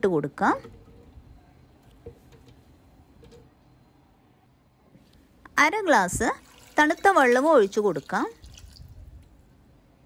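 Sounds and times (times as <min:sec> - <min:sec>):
water pouring into blender jar: 0:06.4 - 0:08.9.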